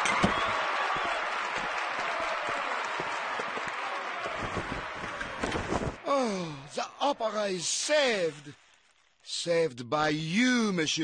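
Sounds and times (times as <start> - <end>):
audience applauding: 0.0 - 6.7.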